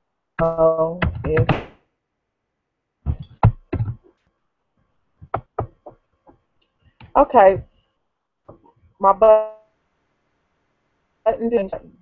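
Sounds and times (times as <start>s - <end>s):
quick taps: 3.1s - 4.1s, 5.2s - 6.4s.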